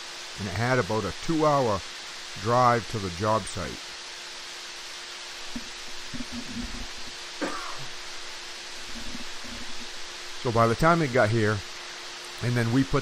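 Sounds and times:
faint hum: 0.0 - 13.0
steady hiss: 0.0 - 13.0.

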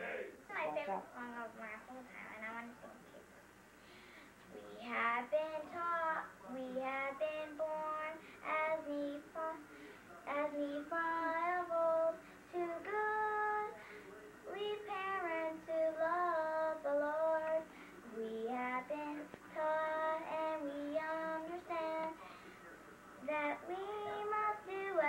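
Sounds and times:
girl singing: 4.6 - 9.6, 10.3 - 13.8, 14.5 - 22.2, 23.2 - 25.0.

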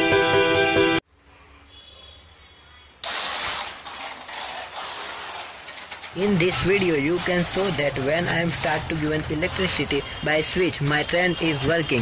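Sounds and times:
model train rattling: 3.0 - 10.0.

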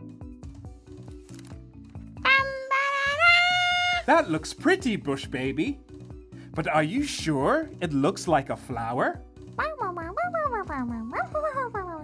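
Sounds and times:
bouncy cartoon music: 1.7 - 12.0.

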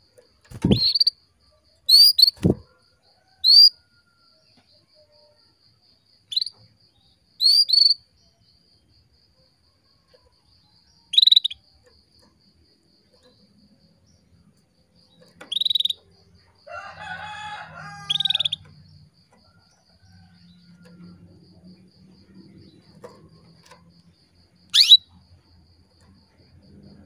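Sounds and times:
pulsing insect trill: 0.0 - 27.0
canary chirping: 0.4 - 1.2, 1.9 - 2.6, 3.4 - 3.7, 6.3 - 6.6, 7.4 - 8.1, 11.0 - 11.9, 15.0 - 19.0, 24.7 - 25.2
rooster crowing: 16.6 - 21.6.

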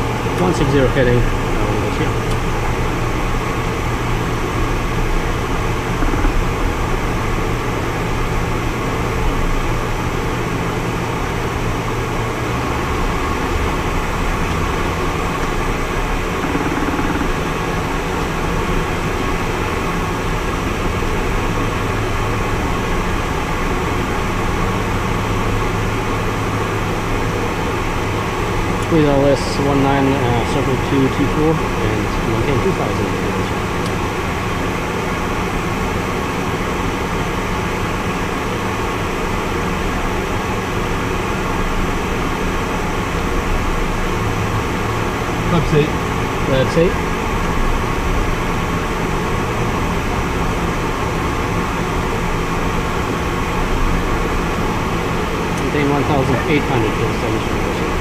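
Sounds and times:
small aircraft engine drone: 0.0 - 58.0
person speaking: 55.6 - 57.9.

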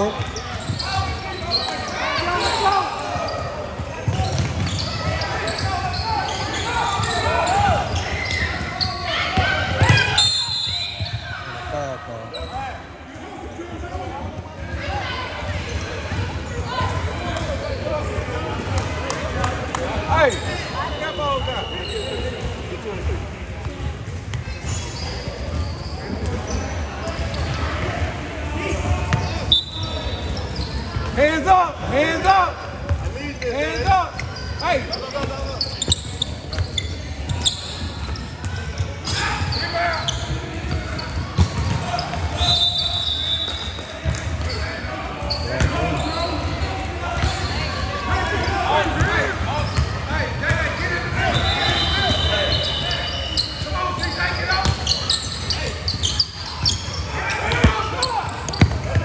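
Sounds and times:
shoes squeaking on court: 0.0 - 12.8, 23.6 - 27.9, 29.1 - 31.2, 32.9 - 59.0
voices from bench and crowd: 0.0 - 59.0.

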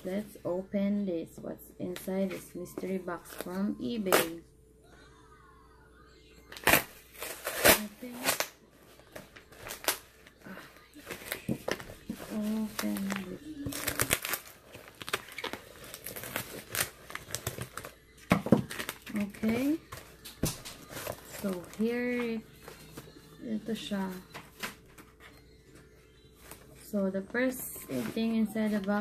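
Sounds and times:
paper packaging tearing and crinkling: 6.6 - 23.1.

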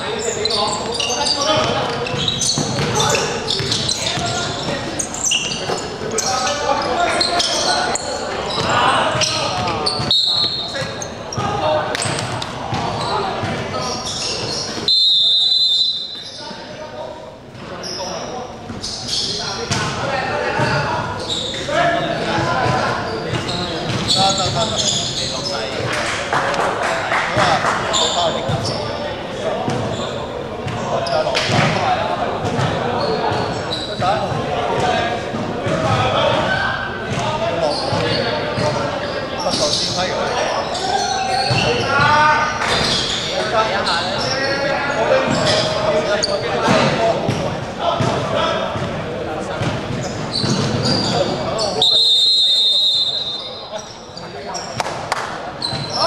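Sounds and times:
basketball bouncing: 1.6 - 4.9
referee's whistle blast: 14.8 - 16.4, 51.7 - 53.6.

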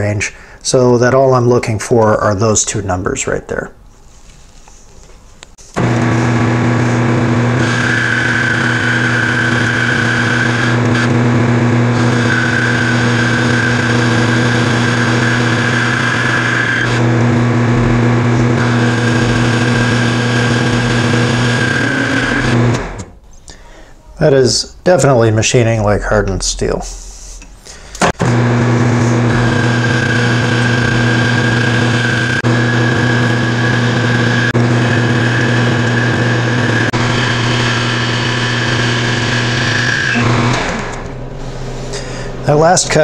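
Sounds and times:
metal lathe hum: 5.8 - 23.1, 28.2 - 42.8.

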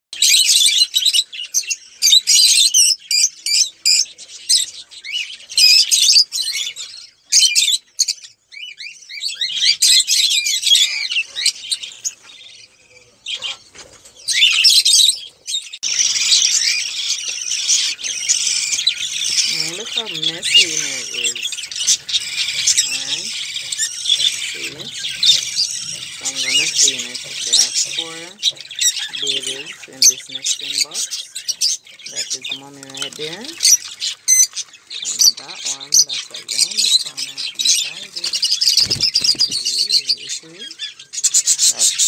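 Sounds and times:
budgerigars chirping: 0.2 - 42.0.

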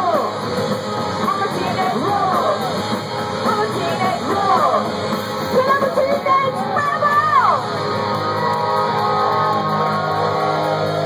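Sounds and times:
punk rock band playing live: 0.0 - 11.0.

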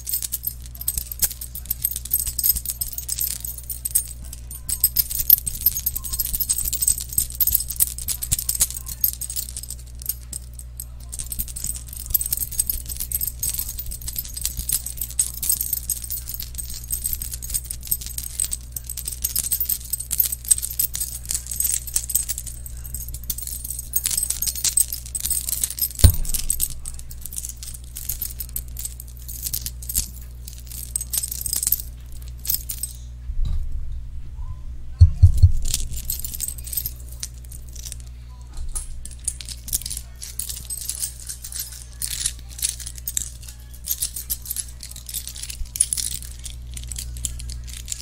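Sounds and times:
metal chain jingling: 0.0 - 33.1, 35.0 - 48.0.

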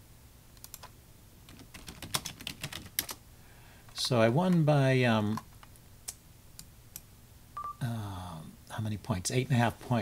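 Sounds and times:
computer clicks: 0.6 - 0.9.

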